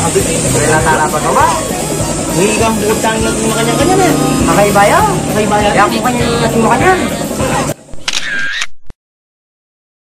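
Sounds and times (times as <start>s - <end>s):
camera shutter whir and click: 7.9s - 8.9s.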